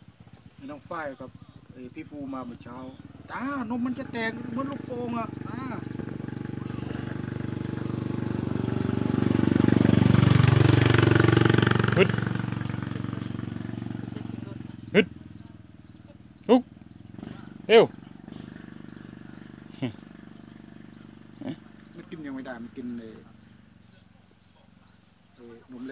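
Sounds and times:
motorcycle engine passing by: 0.0 - 25.9
short sharp calls: 10.5 - 22.1.

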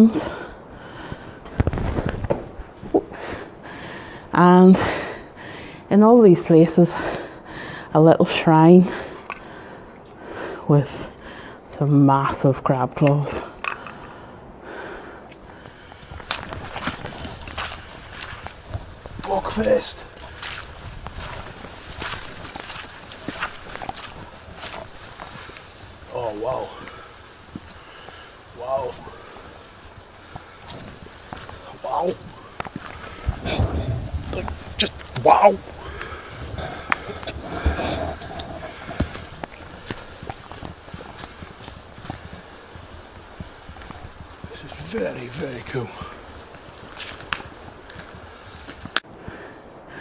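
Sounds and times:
footsteps on muddy path: 0.0 - 11.6, 13.1 - 50.0
handheld camera rumble: 0.9 - 4.2, 13.6 - 49.5.

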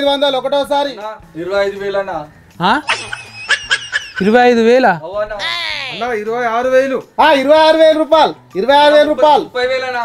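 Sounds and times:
men laughing: 2.8 - 4.6
man calling out: 5.4 - 6.3.

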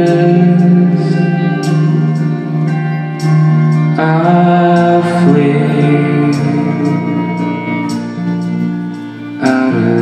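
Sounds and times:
bowed violin: 0.0 - 10.0
electric guitar: 0.0 - 10.0.

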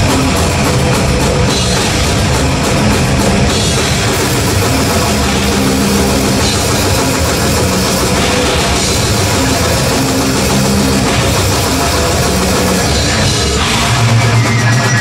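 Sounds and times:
death metal band playing live: 0.0 - 15.0.

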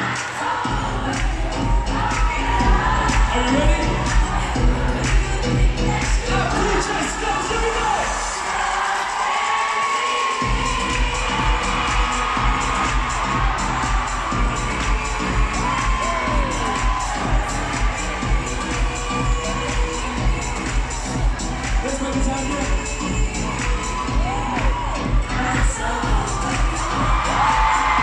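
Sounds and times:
large crowd cheering: 0.0 - 28.0
loud dance music with bass beat: 0.0 - 28.0.

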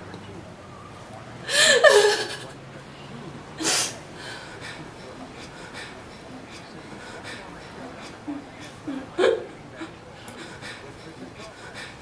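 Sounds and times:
woman sobbing: 1.4 - 2.5, 8.2 - 10.0.

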